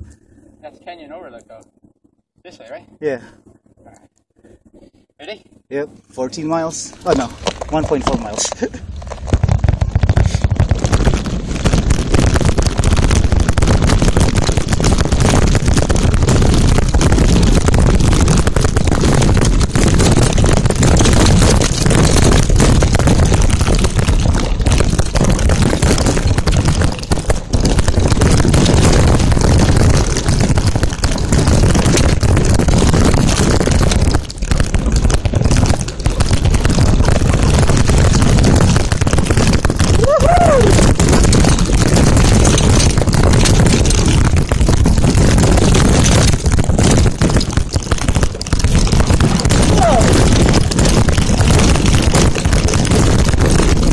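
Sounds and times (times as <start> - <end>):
bike tyres rattling over dirt trail: 0.0 - 53.9
wind buffeting microphone: 6.6 - 47.4.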